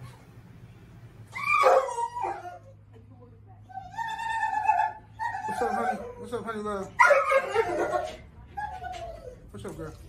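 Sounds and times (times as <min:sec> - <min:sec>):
dog high-pitched call: 0:01.3 - 0:02.7.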